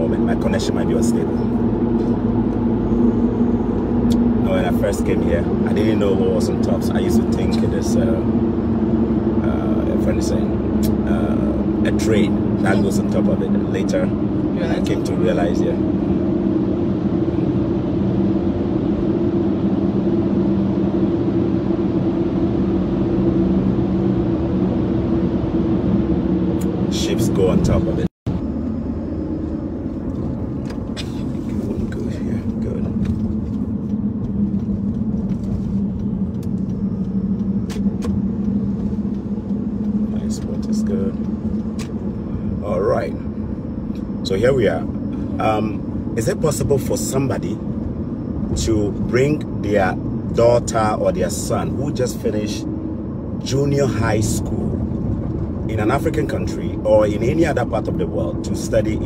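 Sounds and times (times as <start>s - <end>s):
car engine and road drone: 0.0s - 59.0s.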